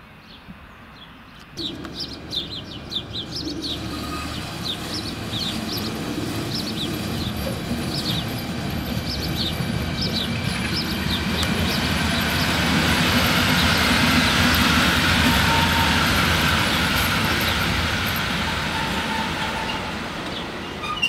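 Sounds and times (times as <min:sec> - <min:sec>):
birds chirping: 0:00.2 - 0:21.0
electric locomotive passing: 0:01.6 - 0:21.0
wheel-on-rail rumble: 0:01.6 - 0:21.0.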